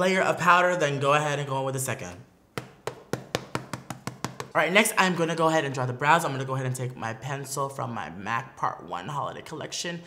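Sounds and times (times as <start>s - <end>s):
powder puff tapping on face: 2.6s - 4.6s.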